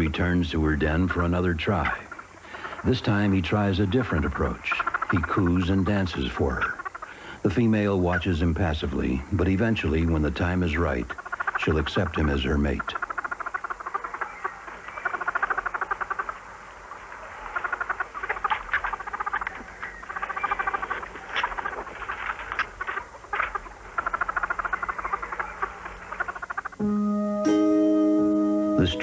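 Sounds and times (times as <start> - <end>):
mink pulsing trills: 0.0 - 26.8.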